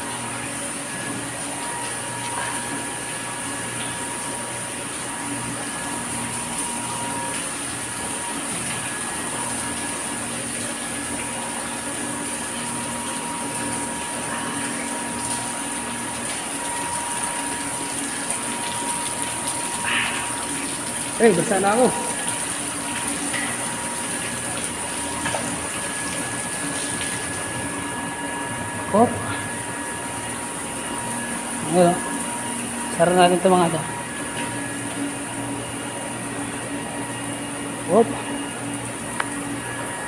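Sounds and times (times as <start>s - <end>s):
pump machine hum: 0.0s - 40.0s
water hissing through pipes: 0.0s - 40.0s.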